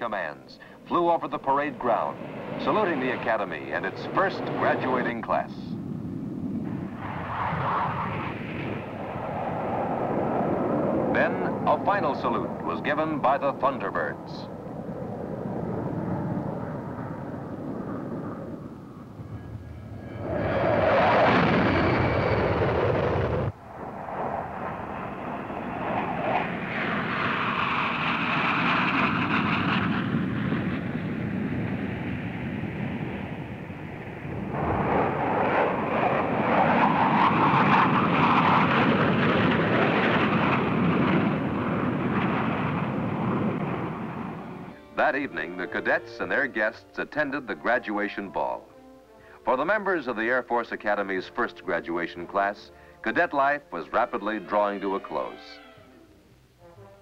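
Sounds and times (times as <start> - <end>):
jets flying over: 0.0 - 57.0.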